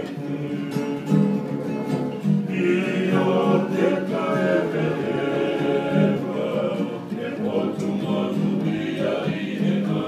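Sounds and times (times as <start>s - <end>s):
men singing together: 0.0s - 1.8s, 2.5s - 10.0s
strummed acoustic guitars: 0.0s - 10.0s.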